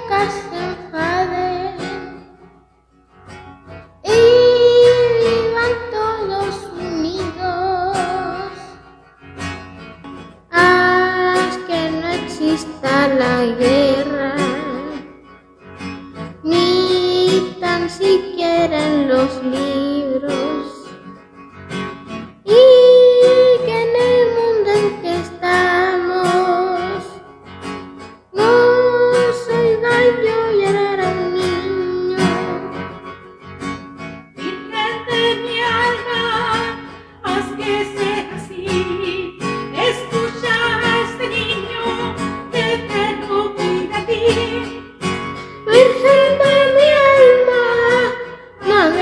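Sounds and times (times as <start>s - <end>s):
child singing: 0.0s - 2.3s, 4.0s - 8.8s, 10.5s - 15.1s, 16.4s - 20.9s, 22.4s - 27.2s, 28.3s - 32.9s, 34.4s - 44.7s, 45.6s - 49.0s
acoustic guitar: 0.0s - 49.0s
person singing long notes: 4.0s - 8.8s, 28.4s - 32.9s, 45.7s - 49.0s.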